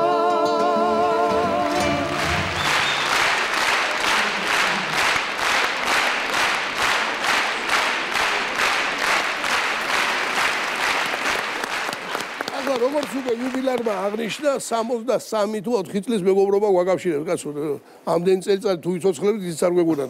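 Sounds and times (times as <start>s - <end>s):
audience rhythmic clapping: 1.5s - 14.8s.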